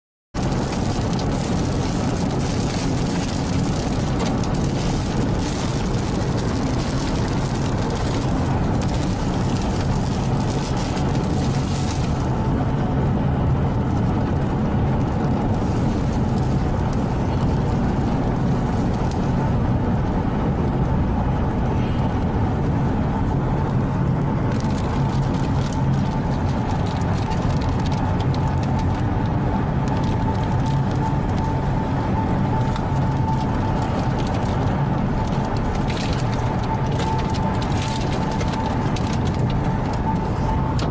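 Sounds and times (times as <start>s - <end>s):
engine and road noise rumble: 0.4s - 40.9s.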